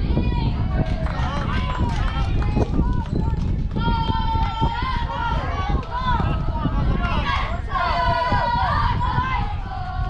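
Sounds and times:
players and spectators shouting: 3.8s - 10.0s.

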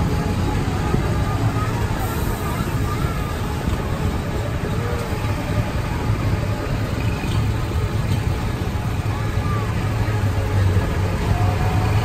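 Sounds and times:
indistinct passenger voices: 0.0s - 12.0s
monorail train rumble: 0.0s - 12.0s.

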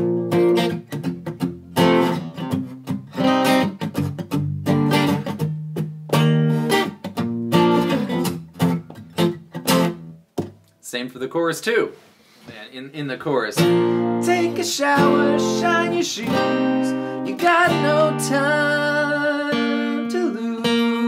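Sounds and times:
acoustic guitar strumming: 0.0s - 10.6s, 13.5s - 21.0s.

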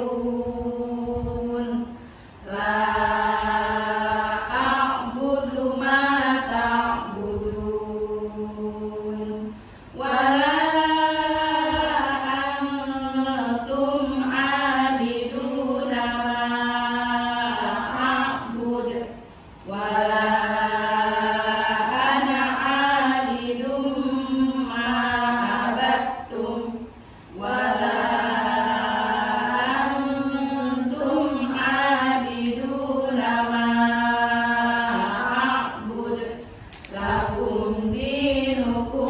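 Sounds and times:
women chanting in unison: 0.0s - 39.0s.

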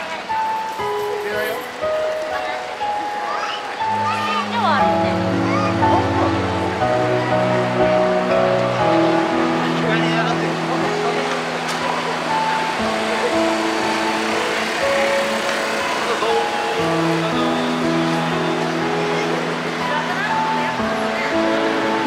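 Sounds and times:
crowd chatter: 0.0s - 22.0s
music of long held notes: 0.0s - 22.0s
passing car traffic: 0.0s - 22.0s.

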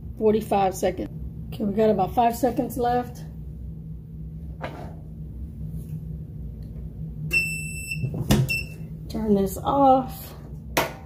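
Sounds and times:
electronic timer beeps: 7.3s - 8.8s.

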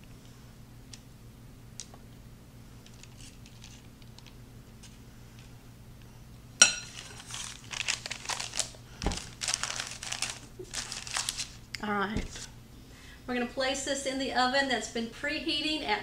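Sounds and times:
parchment paper crinkling: 2.9s - 5.0s, 6.9s - 12.5s.

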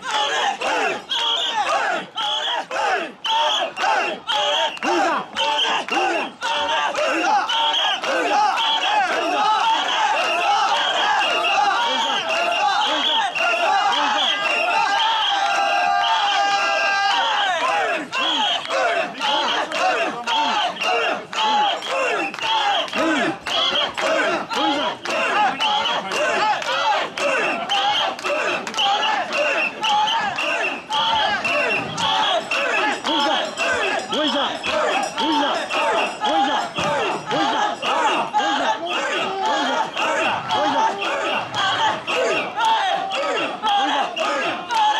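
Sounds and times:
crowd shouting a chant: 0.0s - 44.9s.

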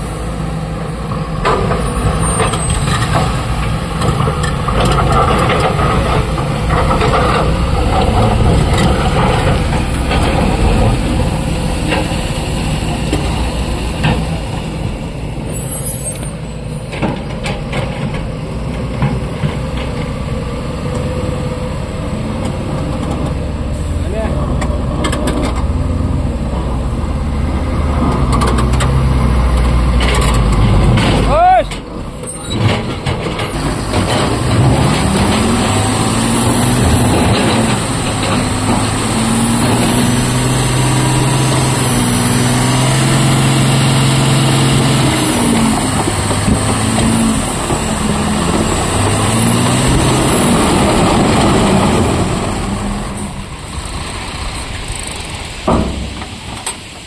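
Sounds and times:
diesel truck engine running: 0.0s - 15.5s, 17.4s - 57.0s
air brake hiss and squeal: 15.5s - 16.5s.

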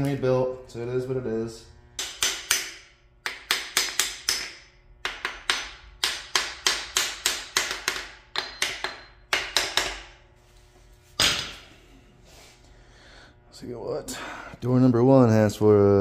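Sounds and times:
sharp metal taps: 2.0s - 10.1s.

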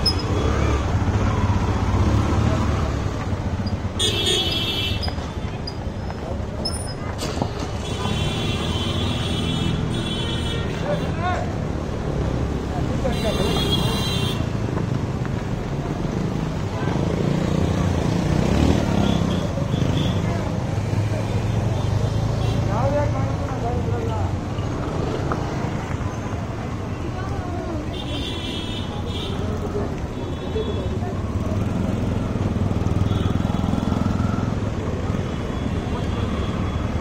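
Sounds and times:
vehicle engines running: 0.0s - 8.2s, 28.9s - 37.0s
passers-by talking: 10.5s - 33.0s.

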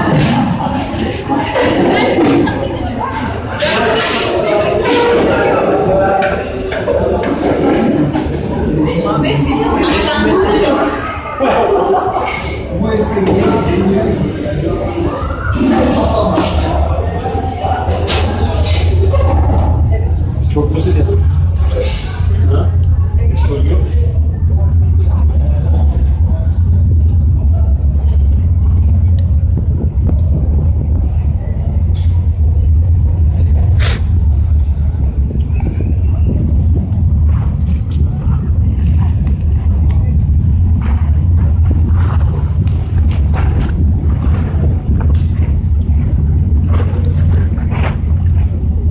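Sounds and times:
wind buffeting microphone: 12.9s - 48.9s.

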